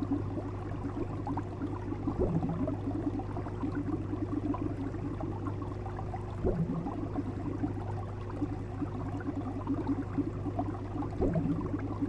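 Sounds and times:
aquarium air bubbles gurgling: 0.0s - 12.0s.

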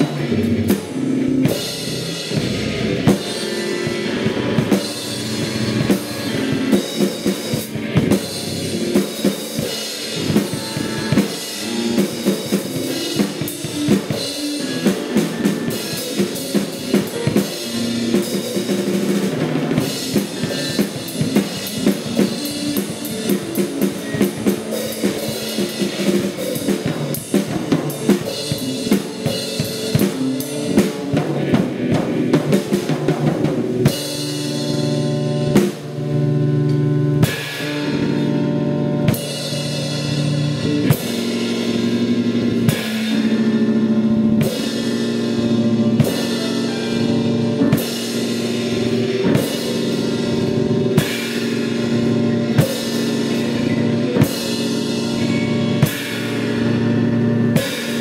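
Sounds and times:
drum kit playing: 0.0s - 58.0s
electric guitar: 0.0s - 58.0s
keyboard tones: 0.0s - 58.0s.

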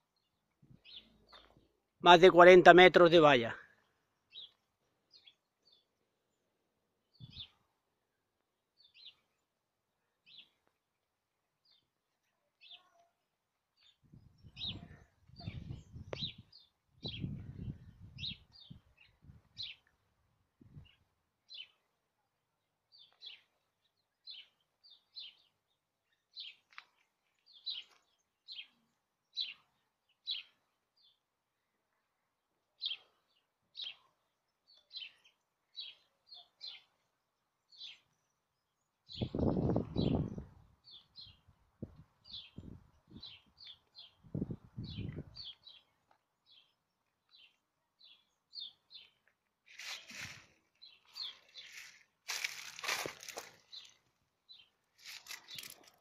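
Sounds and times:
small bird chirping: 12.6s - 13.2s, 13.8s - 19.9s.

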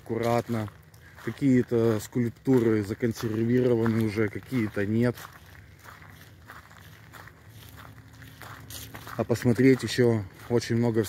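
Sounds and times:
faint footsteps on gravel: 0.0s - 11.0s.

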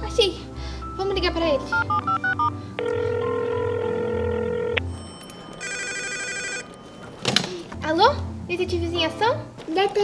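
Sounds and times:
telephone ringback tone: 1.7s - 7.2s
desk telephone ringer trilling: 1.8s - 7.0s.

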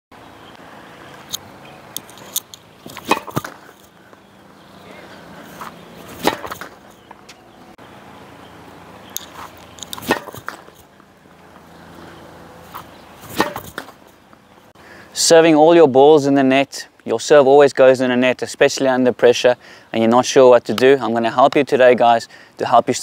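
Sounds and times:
racket striking tennis ball: 2.2s - 3.9s, 5.4s - 7.4s, 9.2s - 10.9s, 12.7s - 14.1s
ball hitting net: 2.8s - 3.8s, 5.6s - 7.4s, 9.3s - 10.8s, 12.7s - 14.0s
ball bouncing on hard court: 2.9s - 3.6s, 6.2s - 7.4s.

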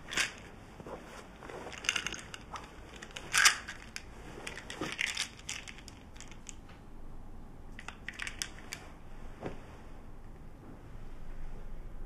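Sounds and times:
pillow rustling and crinkling: 0.0s - 6.1s, 8.5s - 10.2s.

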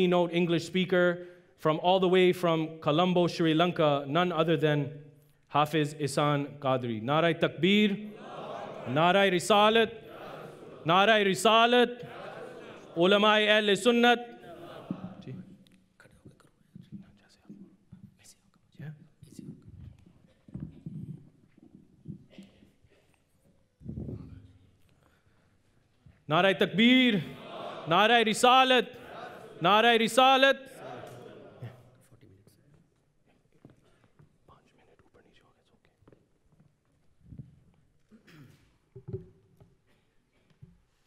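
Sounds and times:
whispering: 16.0s - 18.6s, 34.5s - 36.3s.

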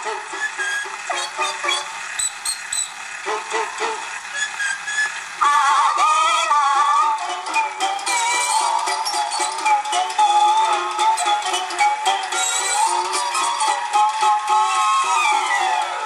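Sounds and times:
gramophone record music: 0.0s - 16.0s.

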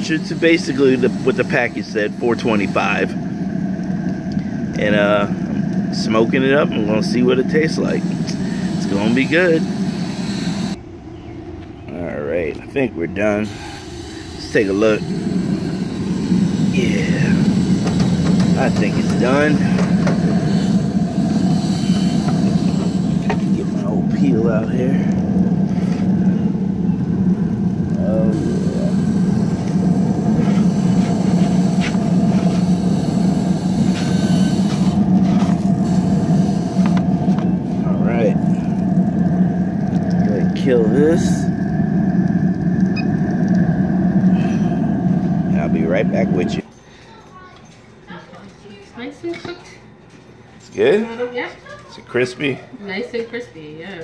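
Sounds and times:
grill fan humming: 0.0s - 54.0s
low background hum: 0.0s - 54.0s.

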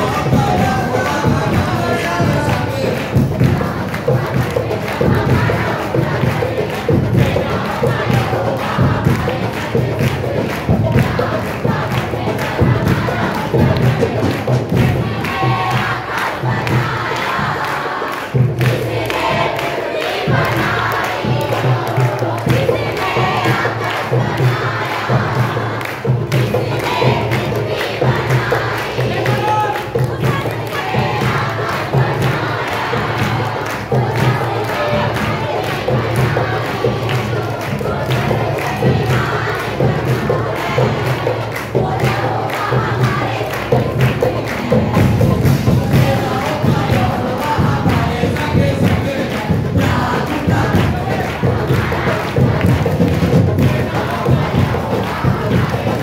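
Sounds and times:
congregation singing and calling out: 0.0s - 56.0s
hand-clapping: 0.0s - 56.0s
steady thudding beat: 0.0s - 56.0s.

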